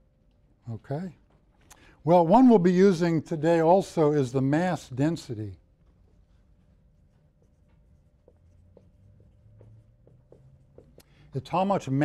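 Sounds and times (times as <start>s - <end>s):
room hum: 0.0s - 12.0s
marker squeaking on whiteboard: 5.8s - 12.0s.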